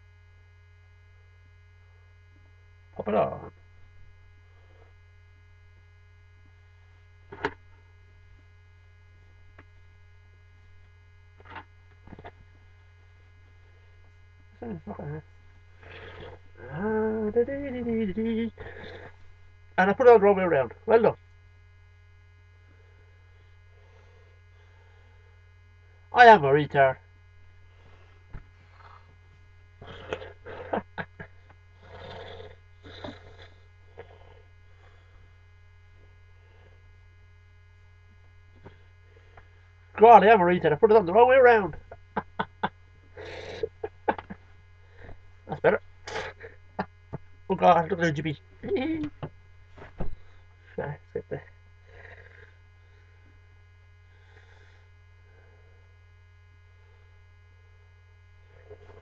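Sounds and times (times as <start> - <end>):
electrical mains hum: 0.0 - 59.0
man chuckling: 14.6 - 19.1, 29.8 - 31.5, 41.7 - 46.9, 48.6 - 49.3, 50.8 - 51.5.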